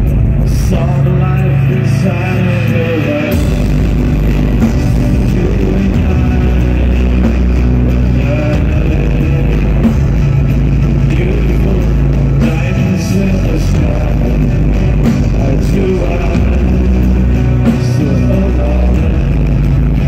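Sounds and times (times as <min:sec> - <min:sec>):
drums being struck: 0:00.0 - 0:20.0
heavy bass line: 0:00.0 - 0:20.0
live band playing loudly: 0:00.0 - 0:20.0.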